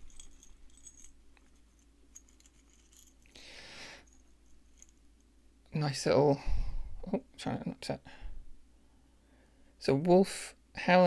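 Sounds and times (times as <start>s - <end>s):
keyring clinking: 0.0s - 3.4s.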